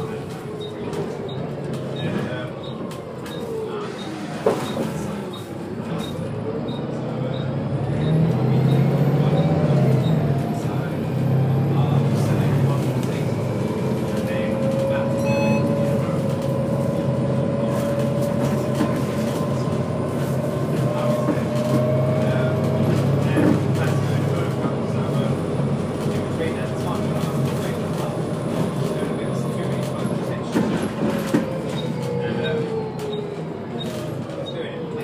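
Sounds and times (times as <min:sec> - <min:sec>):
bus diesel engine under way: 0:00.0 - 0:35.0.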